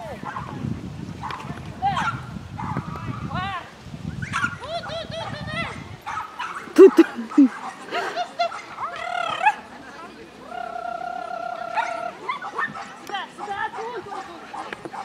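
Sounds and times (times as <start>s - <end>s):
dog barking and yelping: 4.2s - 9.6s.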